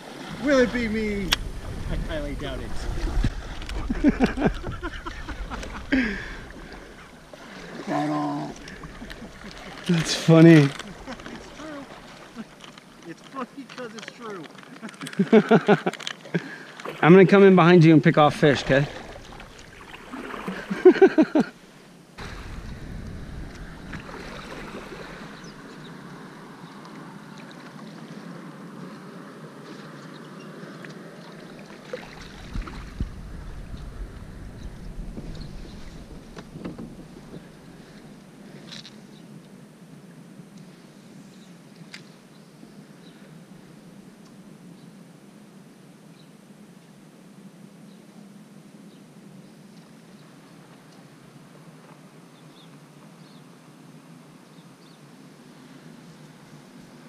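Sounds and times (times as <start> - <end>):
water swishing around paddle: 0.0 - 39.6
wind rumble on microphone: 0.1 - 7.3, 22.2 - 26.6, 32.0 - 38.3.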